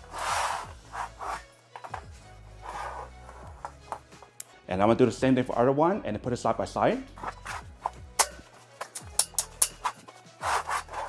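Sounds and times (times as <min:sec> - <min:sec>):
background music: 0:00.0 - 0:11.0
metal scraping on floor: 0:00.1 - 0:04.1.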